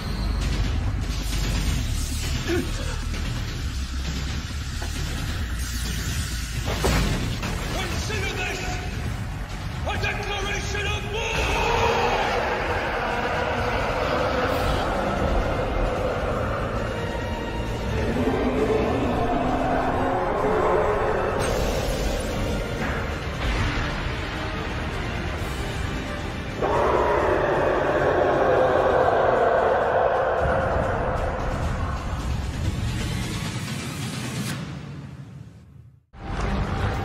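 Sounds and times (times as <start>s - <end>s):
long falling monster roar: 11.5s - 23.2s, 26.5s - 33.0s
deep rumble: 12.1s - 23.7s, 26.6s - 33.6s.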